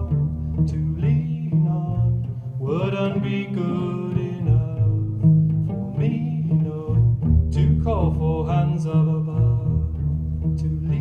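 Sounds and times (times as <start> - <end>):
cello playing: 0.0 - 11.0.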